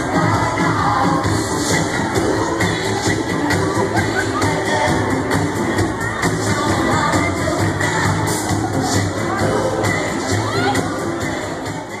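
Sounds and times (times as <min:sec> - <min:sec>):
crowd voices and shouts: 0:00.0 - 0:12.0
dance music: 0:00.0 - 0:12.0.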